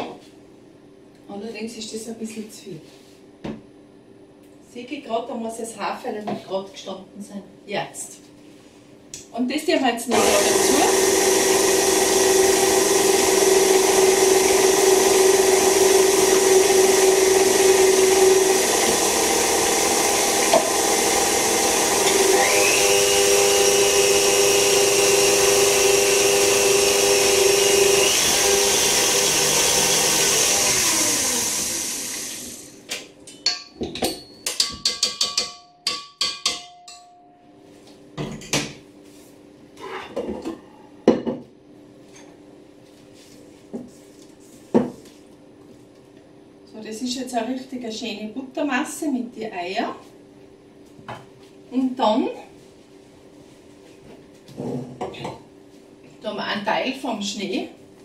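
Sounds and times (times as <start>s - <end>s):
stand mixer running: 10.1s - 32.8s.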